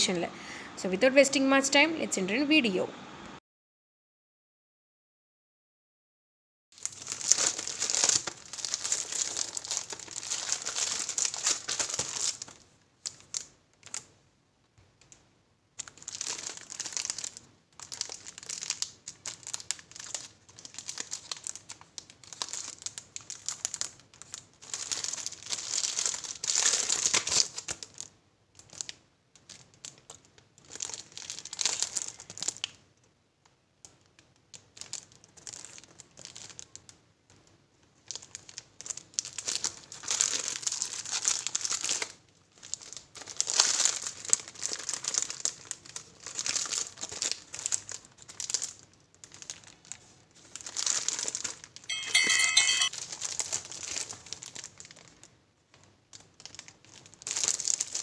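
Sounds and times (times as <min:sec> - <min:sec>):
plastic wrapping crinkling: 0:06.8 - 0:14.1, 0:15.8 - 0:32.8, 0:33.8 - 0:58.0.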